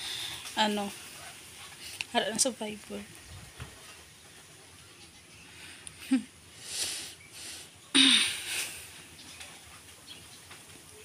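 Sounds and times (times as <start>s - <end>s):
woman breathing: 0.0s - 0.5s, 6.5s - 9.0s
woman sighing: 8.0s - 8.8s.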